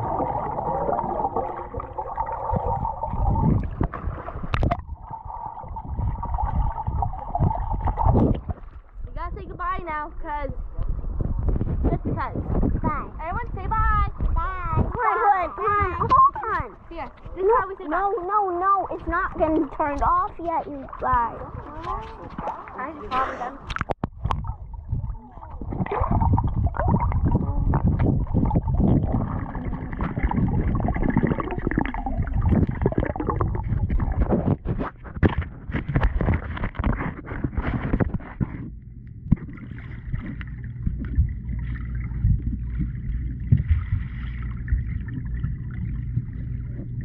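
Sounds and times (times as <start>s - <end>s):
churning underwater bubbling: 0.0s - 47.0s
knocks and crackles from swimming: 0.0s - 47.0s
steady low hum: 0.0s - 47.0s.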